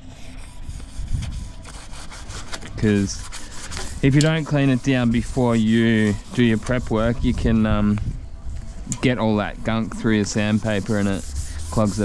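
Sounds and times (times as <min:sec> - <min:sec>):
pad scrubbing metal door frame: 0:00.3 - 0:07.7, 0:09.0 - 0:12.0
wind rumble on microphone: 0:00.4 - 0:12.0.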